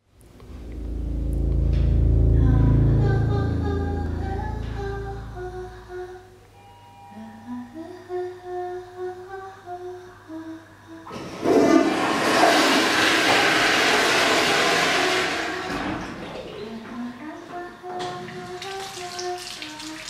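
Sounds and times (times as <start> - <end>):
person humming: 0.6 - 6.4
toilet flushing: 11.1 - 16.9, 17.7 - 20.0.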